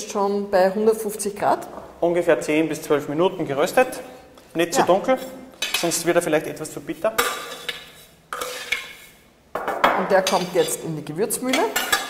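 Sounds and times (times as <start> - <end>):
metal scoop scraping seeds in a pan: 6.9 - 9.2.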